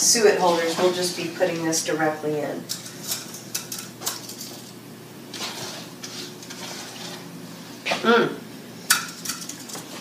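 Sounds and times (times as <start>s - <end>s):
wooden spoon scraping skillet: 0.2s - 1.7s, 4.3s - 7.7s.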